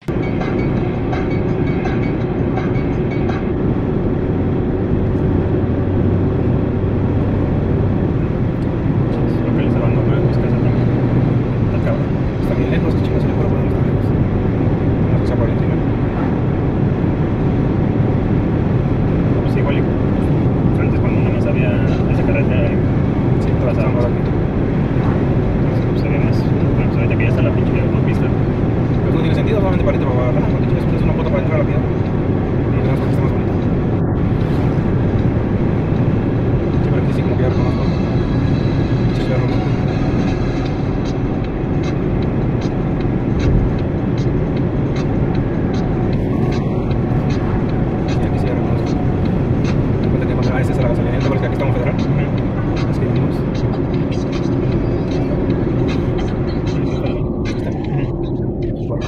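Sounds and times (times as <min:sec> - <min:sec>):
car road noise rumble: 0:00.0 - 0:59.0.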